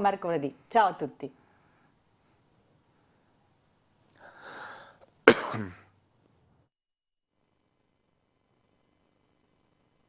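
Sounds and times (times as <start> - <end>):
person clearing throat: 5.3 - 5.9.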